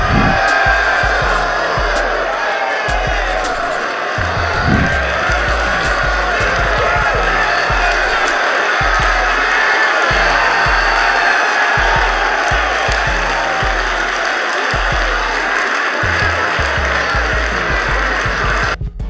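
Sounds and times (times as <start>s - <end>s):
crowd cheering and shouting: 0.0s - 18.8s
music bass notes: 0.0s - 19.0s.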